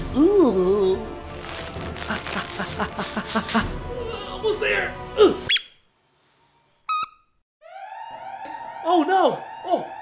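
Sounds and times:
alarm siren rising sweep: 0:07.6 - 0:10.0.

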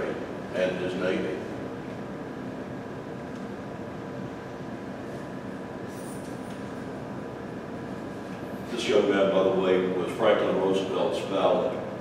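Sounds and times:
room hum: 0:00.0 - 0:12.0.

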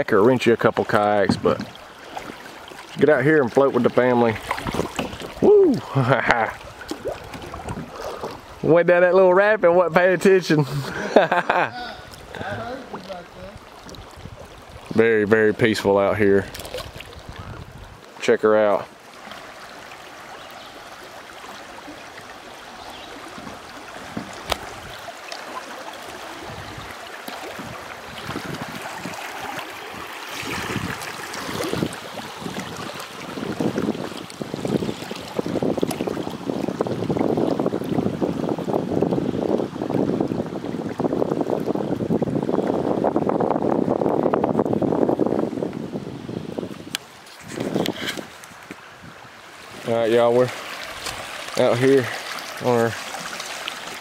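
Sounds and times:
creek water rushing and splashing: 0:00.0 - 0:54.0.

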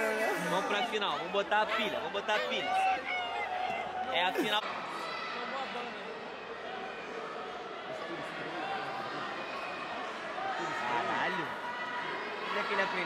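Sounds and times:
spectators talking and calling out: 0:00.0 - 0:13.0.

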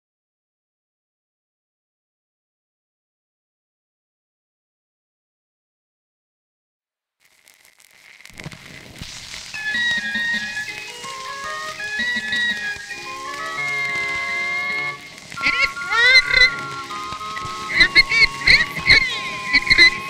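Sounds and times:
wavering sliding high tones: 0:09.5 - 0:20.0
barrel organ playing: 0:09.6 - 0:20.0.

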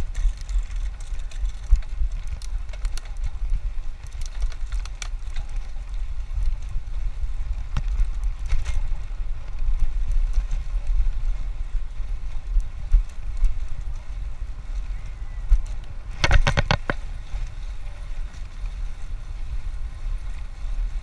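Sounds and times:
bicycle tyre noise on concrete: 0:00.0 - 0:21.0
wind buffeting microphone: 0:00.0 - 0:21.0.

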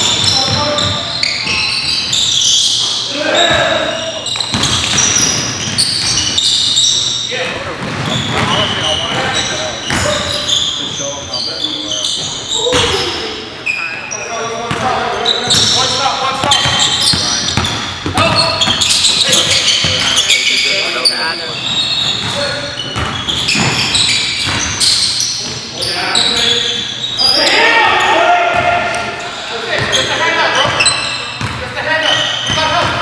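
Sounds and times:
players' voices echoing: 0:00.0 - 0:33.0
sneakers squeaking: 0:00.0 - 0:33.0
basketball bouncing on wooden floor: 0:04.5 - 0:06.3.

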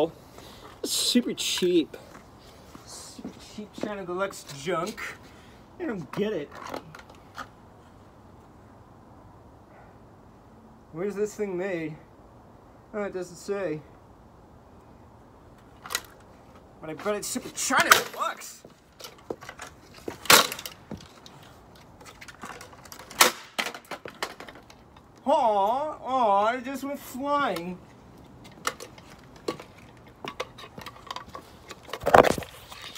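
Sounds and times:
outdoor background noise: 0:00.0 - 0:32.9.

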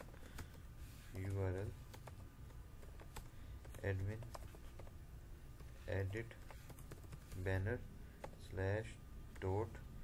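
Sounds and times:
computer keyboard typing: 0:00.0 - 0:05.0, 0:05.6 - 0:07.6.

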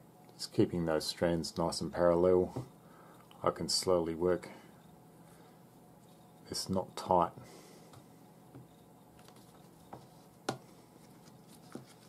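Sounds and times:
hands handling cord: 0:07.9 - 0:12.0.

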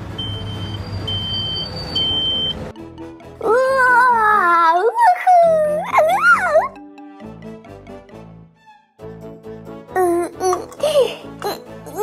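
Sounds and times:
background music: 0:00.2 - 0:12.0
squeaky cartoon creature voice: 0:03.4 - 0:06.8.

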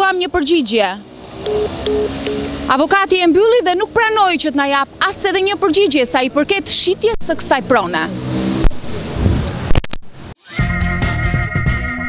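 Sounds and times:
car engine passing: 0:01.0 - 0:05.4, 0:06.2 - 0:10.3.

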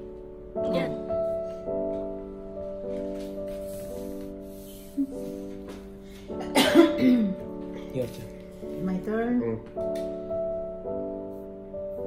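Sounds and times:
soft piano background music: 0:00.0 - 0:12.0
person coughing loudly: 0:06.4 - 0:07.4.

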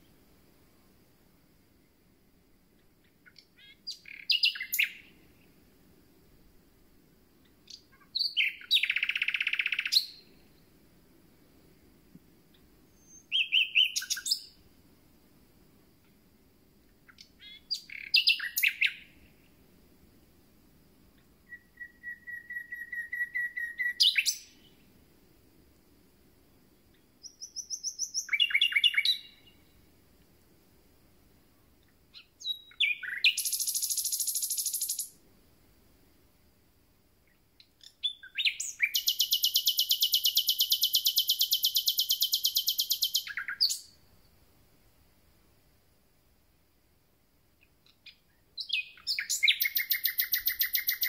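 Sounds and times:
nightingale singing: 0:02.8 - 0:05.6, 0:07.4 - 0:10.8, 0:12.5 - 0:14.7, 0:16.8 - 0:19.6, 0:21.1 - 0:25.0, 0:26.5 - 0:29.9, 0:31.5 - 0:35.2, 0:37.2 - 0:44.3, 0:47.5 - 0:51.0.

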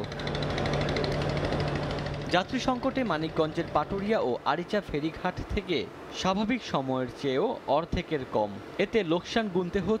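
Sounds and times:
motor running with rapid pulse: 0:00.0 - 0:04.0.

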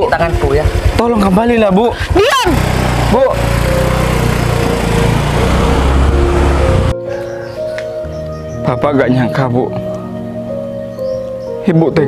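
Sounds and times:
motor scooter engine running: 0:00.0 - 0:06.9.

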